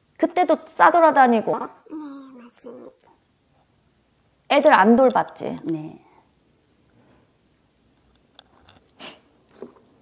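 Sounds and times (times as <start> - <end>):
woman speaking: 4.5 - 6.2.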